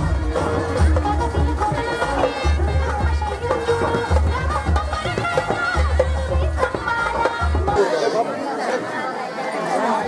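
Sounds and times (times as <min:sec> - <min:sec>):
deep drum beat: 0:00.0 - 0:07.8
crowd chatter: 0:00.0 - 0:10.0.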